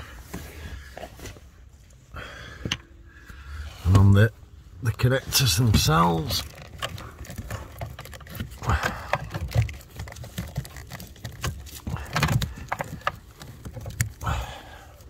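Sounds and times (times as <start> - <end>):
hands clicking and tapping plastic: 5.8 - 14.4.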